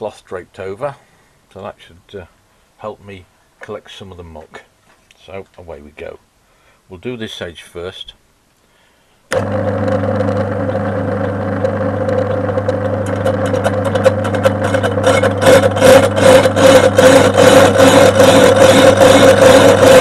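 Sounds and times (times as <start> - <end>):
lathe motor humming: 9.3 - 20.0.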